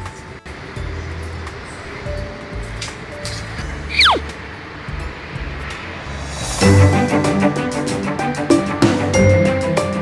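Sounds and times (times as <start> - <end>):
soft background music: 0.0 - 10.0
falling whistle sound effect: 3.9 - 4.3.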